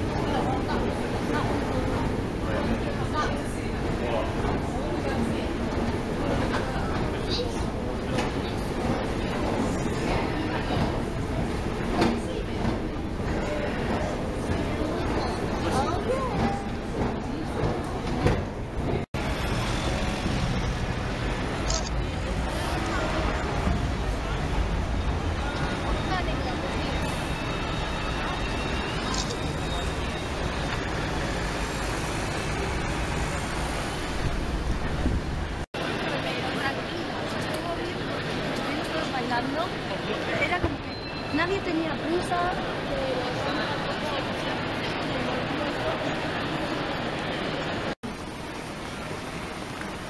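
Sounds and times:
street traffic: 0.0s - 50.0s.

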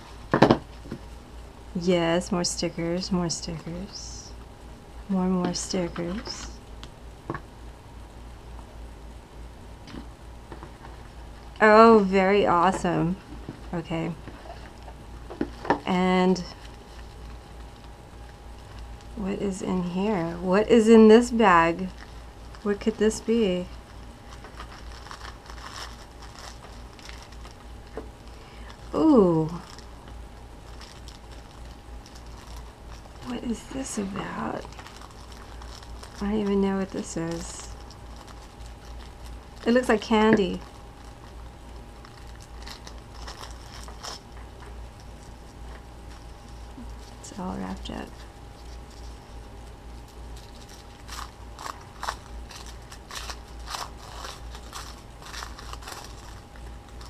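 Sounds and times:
faint low hum: 0.0s - 57.0s
wrapping paper crinkling: 10.4s - 57.0s
cloth pouch rustling: 23.7s - 27.7s, 30.6s - 57.0s.

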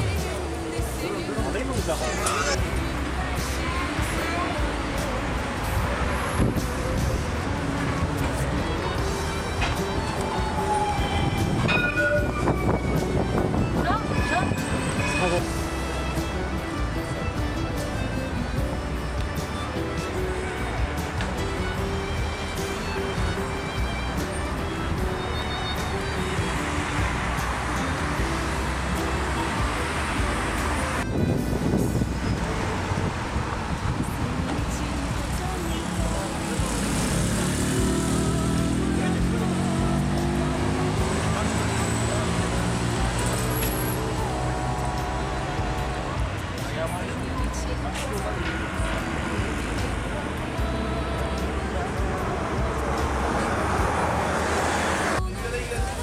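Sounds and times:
indistinct voices: 0.0s - 16.9s, 31.7s - 56.0s
music: 0.0s - 56.0s
road traffic passing: 0.0s - 56.0s.

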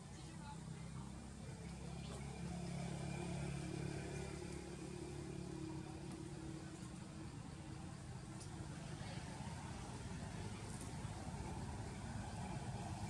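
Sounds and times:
low engine hum: 0.0s - 13.0s.

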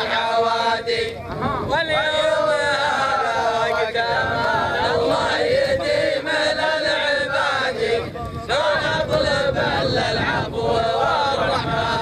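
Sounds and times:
men chanting poetry: 0.0s - 12.0s.

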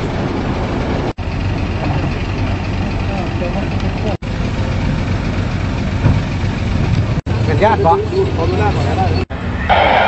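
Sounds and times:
outdoor noise: 0.0s - 10.0s
vehicle engine rumbling: 0.0s - 10.0s.

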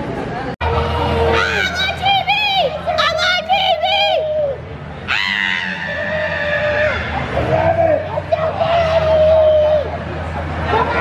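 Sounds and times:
shrill scream: 5.1s - 9.9s.

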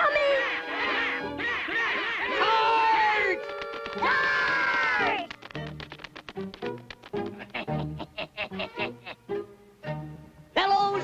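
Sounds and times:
cartoon characters squawking: 0.0s - 3.4s
background music: 0.0s - 11.0s.

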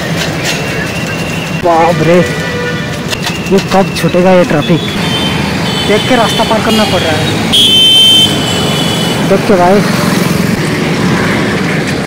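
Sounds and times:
dense road traffic: 0.0s - 12.0s.

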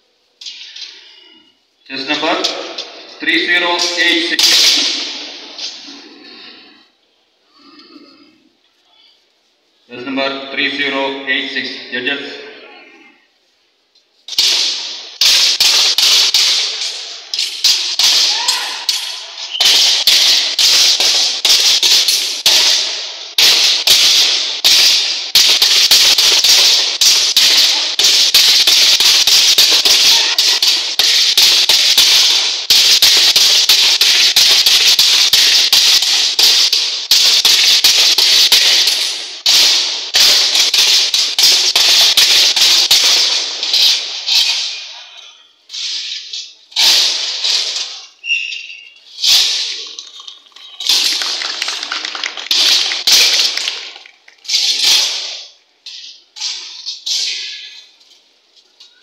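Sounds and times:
swords clashing on metal shields: 14.3s - 50.0s, 52.5s - 58.0s.

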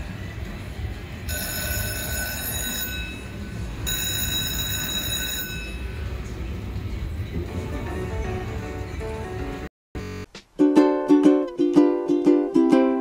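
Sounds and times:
slot machine jackpot bell ringing: 1.3s - 6.2s.

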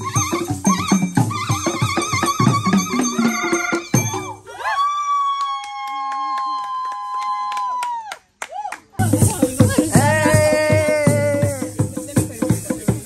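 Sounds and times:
drumming: 9.0s - 13.0s.

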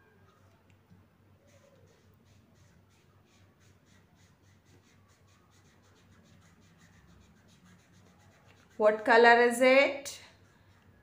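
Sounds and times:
marker scribbling on paper: 1.4s - 9.3s
woman speaking: 8.8s - 10.3s.

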